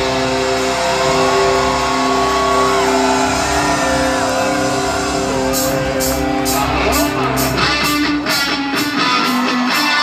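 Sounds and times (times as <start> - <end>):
distorted electric guitar notes: 0.0 - 10.0
live rock band: 0.0 - 10.0.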